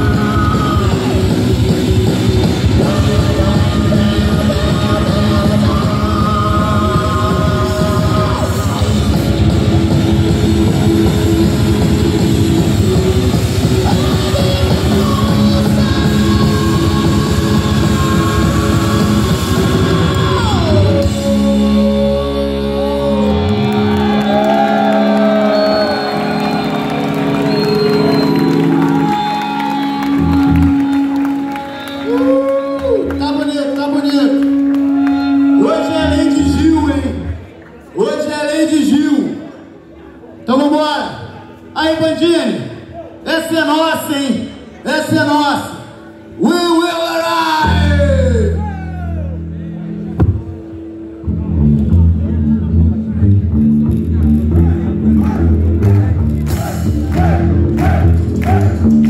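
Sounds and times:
heavy metal band playing live: 0.0 - 22.1
person singing: 0.0 - 24.4.

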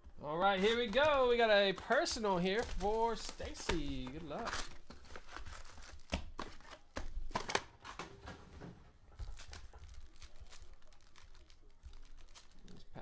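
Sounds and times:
card packs clicking and crinkling: 0.4 - 8.1, 9.2 - 13.0.

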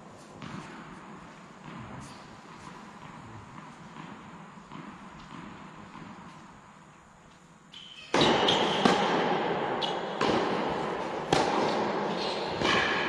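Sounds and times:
tennis ball hit and bouncing: 0.4 - 6.5, 7.3 - 13.0
tennis shoes squeaking: 7.7 - 9.1, 9.8 - 12.9.

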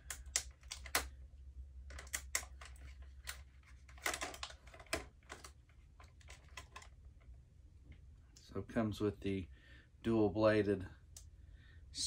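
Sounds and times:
steady low hum: 0.0 - 12.0
stiff plastic crackling: 1.8 - 7.3.

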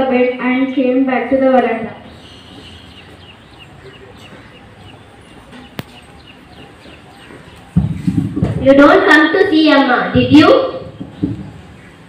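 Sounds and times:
quiet high chirps: 2.0 - 7.8
microphone handling thump: 7.8 - 8.8, 10.9 - 11.5.

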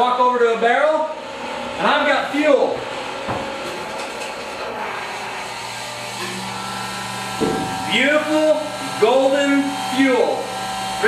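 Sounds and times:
electric pump motor hum: 0.0 - 11.0.

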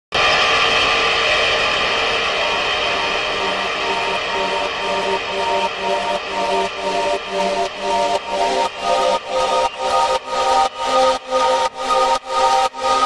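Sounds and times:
harsh wall of noise: 0.2 - 13.0
pulsing synth pattern: 3.4 - 13.0.

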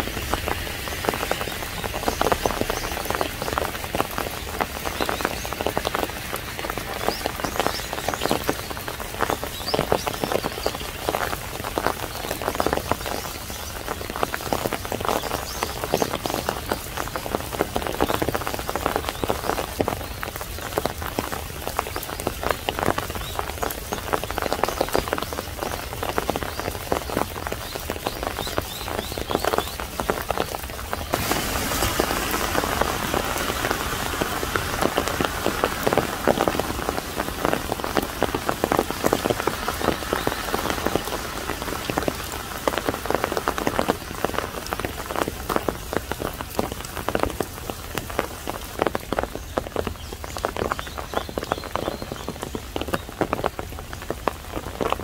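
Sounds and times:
rain drops tapping on surfaces: 0.0 - 55.0.

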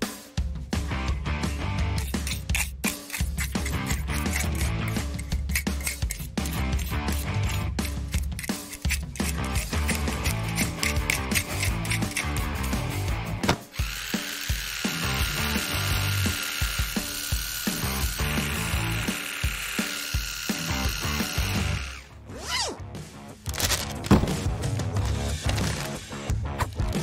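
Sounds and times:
background music: 0.0 - 27.0
rotary tool whining: 2.0 - 22.6.

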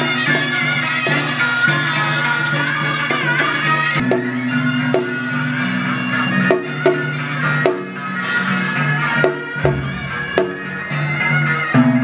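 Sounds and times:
ringing percussion strikes: 0.0 - 12.0
wind instrument melody: 0.0 - 12.0.

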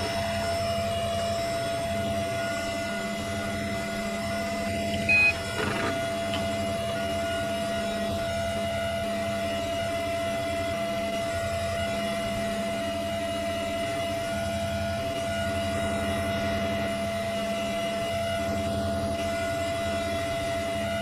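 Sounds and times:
distorted droning hum: 0.0 - 11.0
high beep: 4.9 - 5.5.

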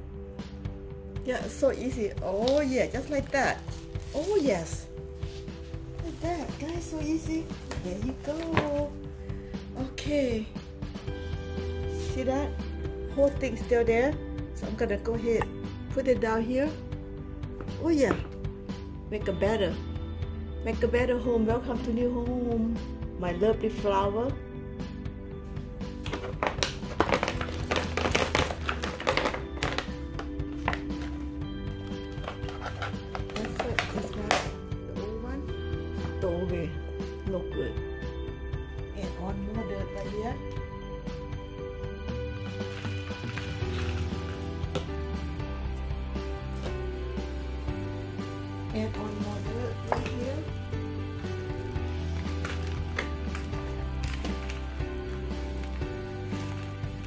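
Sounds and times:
background music: 0.0 - 57.0
plastic bag rustling: 2.2 - 9.0, 26.0 - 34.4, 42.5 - 44.7, 48.8 - 57.0
soil pouring into plastic pot: 42.4 - 44.9, 48.8 - 57.0.

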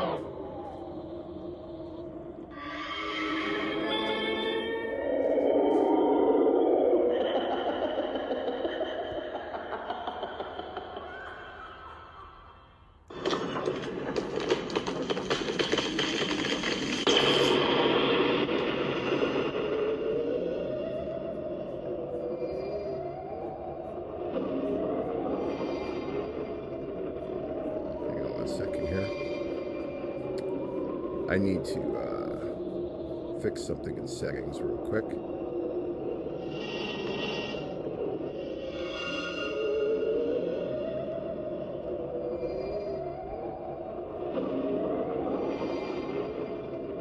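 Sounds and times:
eerie wavering tone: 0.0 - 13.2, 17.0 - 47.0
dense crackling with wavering tones: 0.0 - 47.0.

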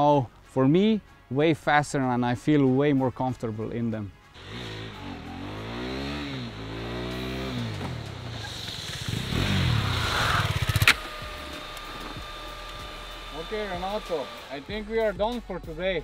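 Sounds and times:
motorcycle engine revving: 4.4 - 15.0.

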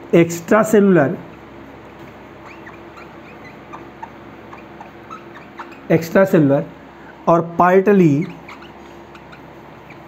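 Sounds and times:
person speaking: 0.1 - 1.4, 5.9 - 8.5
marker squeaking on whiteboard: 1.1 - 6.7, 7.4 - 10.0.

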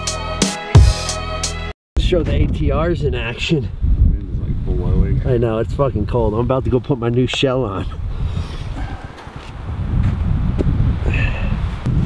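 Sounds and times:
wind buffeting microphone: 2.0 - 12.0.

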